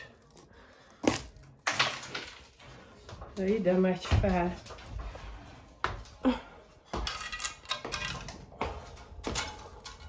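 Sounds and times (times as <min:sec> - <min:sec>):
footsteps on metal staircase: 0:02.9 - 0:10.0.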